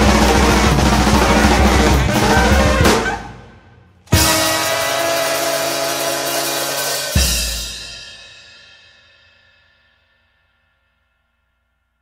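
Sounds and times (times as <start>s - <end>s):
saxophone and trombone chord: 0.0s - 3.1s, 4.1s - 7.9s
cymbals washing: 4.1s - 8.6s.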